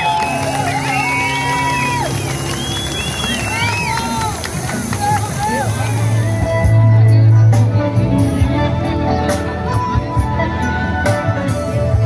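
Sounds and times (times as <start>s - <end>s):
crowd cheering and whooping: 0.0s - 6.4s
low backing chord from speaker: 0.0s - 12.0s.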